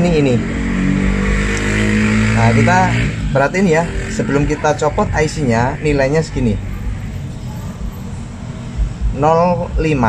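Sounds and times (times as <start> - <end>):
low background rumble: 2.4 - 10.0.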